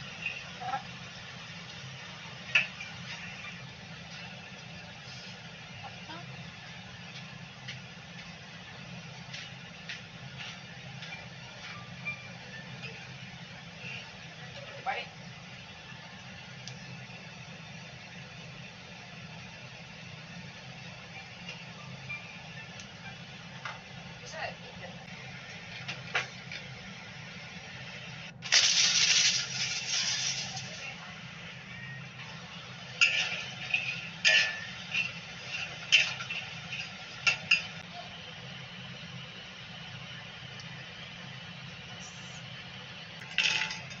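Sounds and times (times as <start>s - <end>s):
hot oil sizzling: 0.0s - 44.0s
low steady background hum: 0.0s - 44.0s
utensils clinking against wok: 33.0s - 37.8s.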